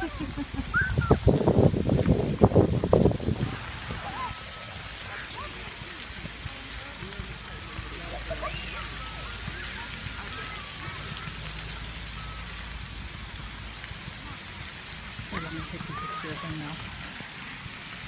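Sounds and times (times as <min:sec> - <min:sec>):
steady outdoor hiss: 0:00.0 - 0:18.0
faint distant voices: 0:03.4 - 0:17.4.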